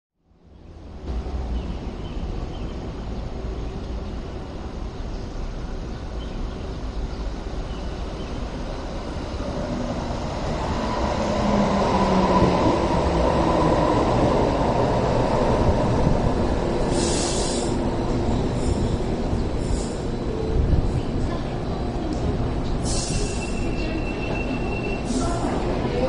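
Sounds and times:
light rail train running: 0:00.3 - 0:26.0
short air hisses: 0:16.9 - 0:17.8, 0:19.6 - 0:20.0, 0:22.8 - 0:23.6.

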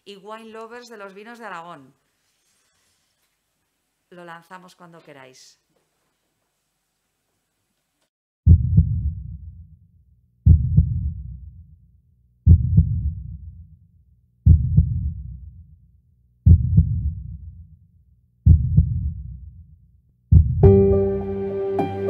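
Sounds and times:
heartbeat double thumps: 0:08.5 - 0:09.6, 0:10.4 - 0:11.5, 0:12.5 - 0:13.6, 0:14.4 - 0:15.5, 0:16.4 - 0:17.7, 0:18.4 - 0:19.6, 0:20.3 - 0:20.8.

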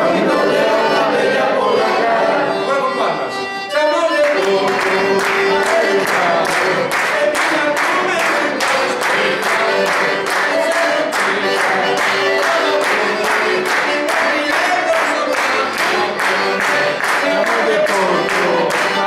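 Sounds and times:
button accordion playing lively tune: 0:00.0 - 0:19.0
person singing: 0:03.6 - 0:19.0
hand-clapping in time: 0:04.1 - 0:19.0.

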